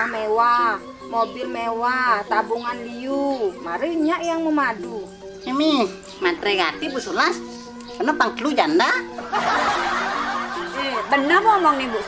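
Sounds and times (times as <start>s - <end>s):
laughter: 9.2s - 12.0s.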